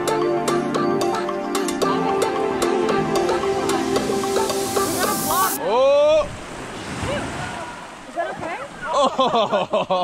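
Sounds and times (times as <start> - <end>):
background music with held notes: 0.0 - 5.6.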